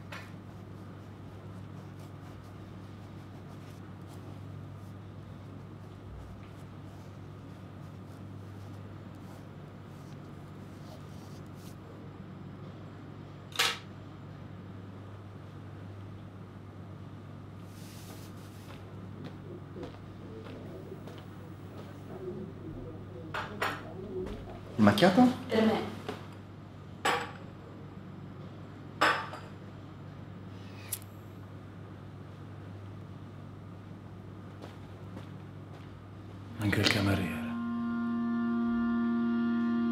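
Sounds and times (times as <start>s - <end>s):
low room hum: 0.0s - 39.9s
low hum: 37.0s - 39.9s.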